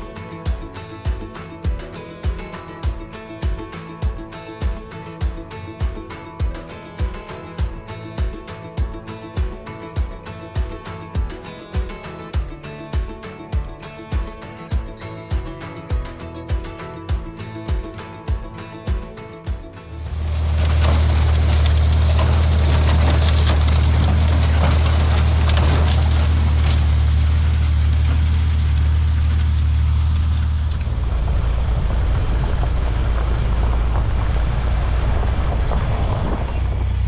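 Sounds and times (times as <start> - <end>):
tractor engine running under load: 0.0 - 37.0.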